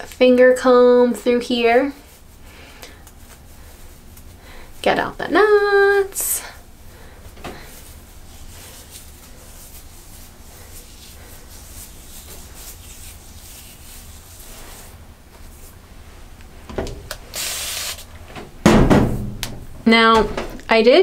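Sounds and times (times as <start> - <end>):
fingers rubbing damp hair: 7.6 - 15.8
short hiss: 17.3 - 18.1
knock: 18.6 - 19.6.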